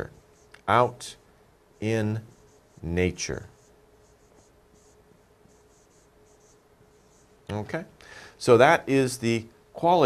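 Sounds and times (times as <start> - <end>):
thin steady hum: 0.0 - 10.0.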